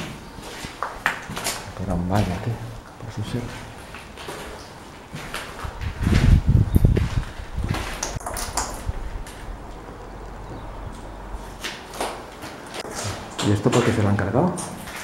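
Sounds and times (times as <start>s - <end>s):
footsteps on rubble: 0.0s - 2.6s, 3.3s - 9.7s, 11.4s - 15.0s.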